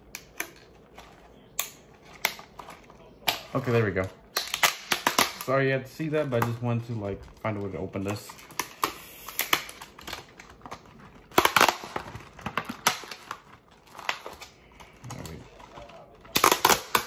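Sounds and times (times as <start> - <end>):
blister pack crackling and snapping: 0.0 - 17.0.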